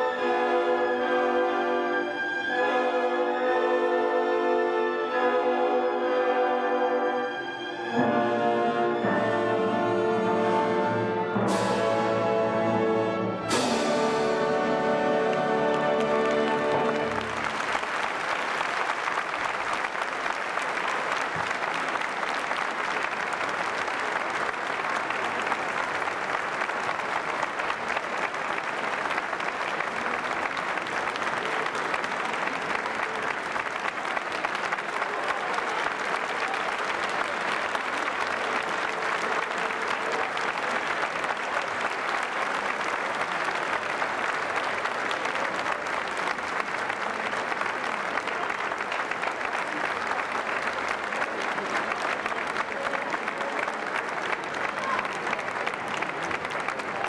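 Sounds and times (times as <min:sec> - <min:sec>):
audience applauding: 0:13.5 - 0:57.0.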